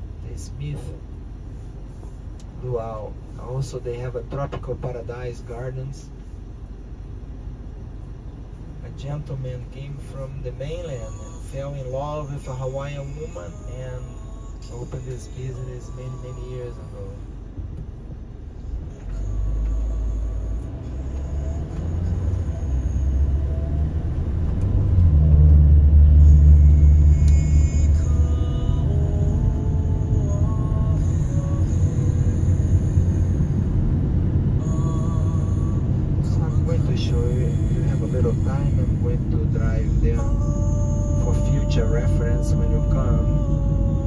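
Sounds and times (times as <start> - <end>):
car engine and tyres rumbling: 0.0 - 44.0.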